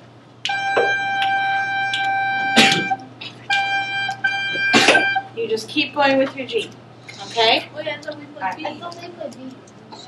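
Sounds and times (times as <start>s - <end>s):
recorder holding a long note: 0.5s - 5.4s.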